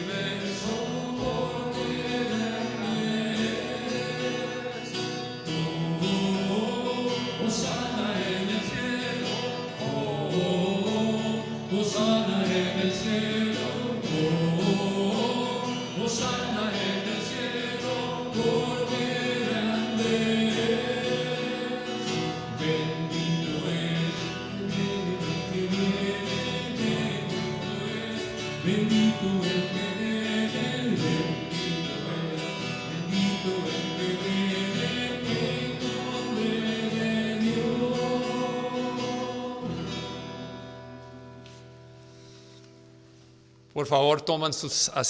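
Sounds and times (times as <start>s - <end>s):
group singing a hymn: 0.0s - 42.5s
guitar chords: 0.0s - 44.7s.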